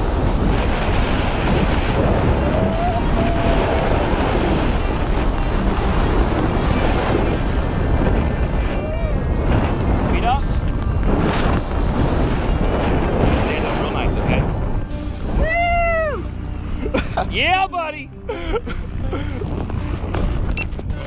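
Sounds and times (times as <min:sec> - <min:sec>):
wind buffeting microphone: 0:00.0 - 0:17.5, 0:18.2 - 0:21.0
person shouting: 0:02.5 - 0:03.8, 0:15.4 - 0:16.2.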